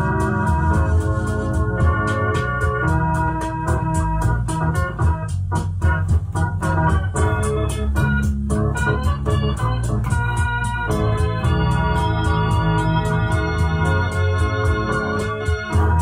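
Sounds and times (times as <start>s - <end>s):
heavy bass line: 0.0s - 16.0s
organ-toned keyboard chords: 0.0s - 16.0s.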